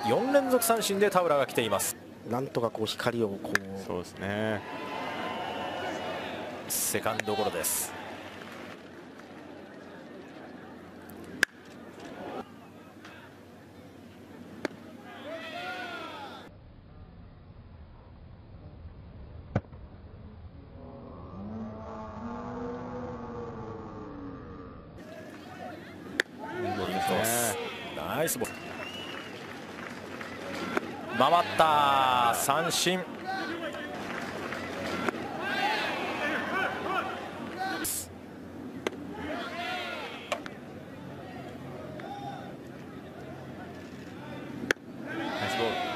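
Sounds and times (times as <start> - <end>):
stadium crowd voices: 0.0 - 16.5, 25.0 - 45.9.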